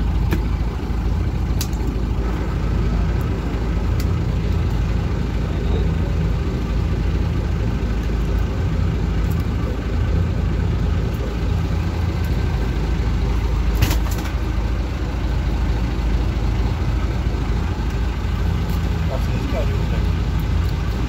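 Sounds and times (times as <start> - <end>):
boat engine rumbling: 0.0 - 21.0.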